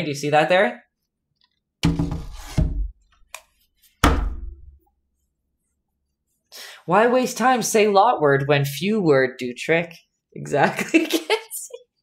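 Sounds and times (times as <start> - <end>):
canvas knocking on wooden easel: 1.8 - 2.9, 4.0 - 4.8.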